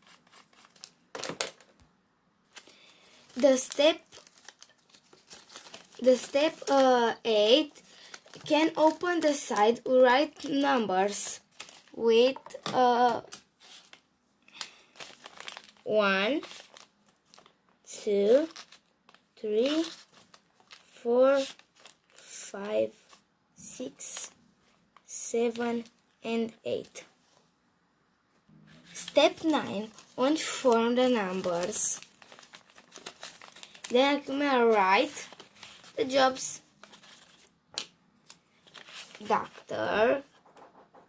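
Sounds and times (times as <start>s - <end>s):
paper rustling and crinkling: 0.0s - 1.7s, 2.5s - 17.5s, 18.2s - 22.3s, 28.7s - 41.0s.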